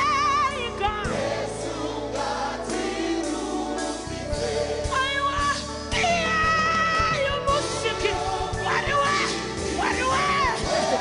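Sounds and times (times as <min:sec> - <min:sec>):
woman singing a hymn: 0:00.0 - 0:01.2, 0:04.4 - 0:11.0
live band playing: 0:00.0 - 0:11.0.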